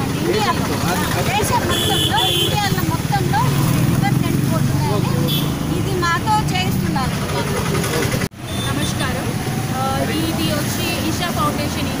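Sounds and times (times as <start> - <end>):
crowd chatter: 0.0 - 12.0
people speaking: 0.0 - 12.0.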